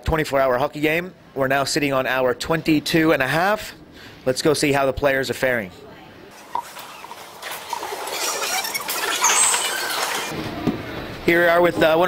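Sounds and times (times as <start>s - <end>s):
brief high squeak: 8.1s - 10.3s.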